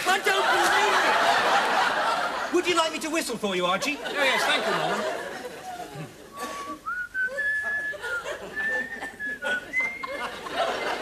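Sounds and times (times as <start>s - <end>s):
man whistling a slow tune: 6.4s - 10.1s.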